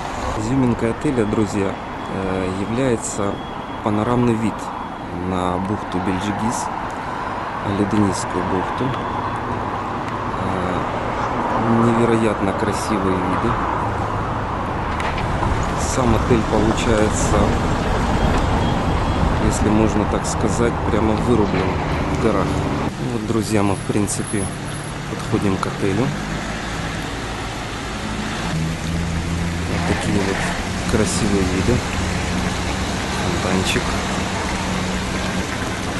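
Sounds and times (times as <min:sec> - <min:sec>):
outdoor background noise: 0:00.0 - 0:35.9
vehicle engine humming: 0:00.0 - 0:35.9
man talking: 0:00.4 - 0:06.7, 0:07.6 - 0:09.0, 0:10.4 - 0:10.9, 0:11.6 - 0:13.6, 0:15.7 - 0:17.6, 0:19.4 - 0:26.2, 0:29.7 - 0:31.9, 0:33.2 - 0:34.0
fountain water splashing: 0:26.9 - 0:35.9.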